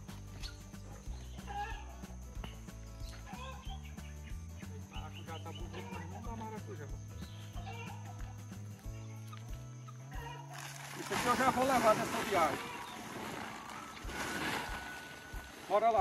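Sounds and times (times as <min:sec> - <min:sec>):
background music: 0:00.0 - 0:16.0
dry sack rustling and crackling: 0:10.5 - 0:16.0.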